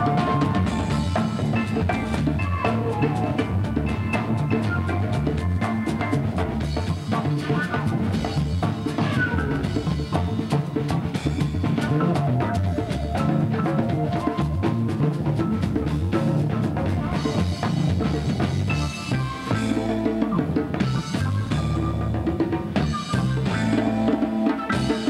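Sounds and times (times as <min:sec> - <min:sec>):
drum kit beat: 0:00.0 - 0:25.0.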